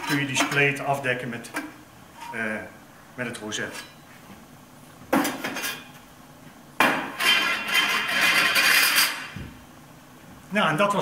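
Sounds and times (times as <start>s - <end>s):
metal scraping on metal: 2.1s - 2.6s, 7.2s - 9.4s.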